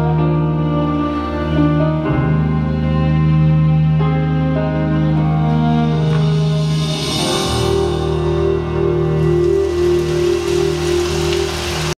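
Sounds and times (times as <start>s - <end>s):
music long held chord: 0.0s - 12.0s
audience applause: 9.3s - 12.0s.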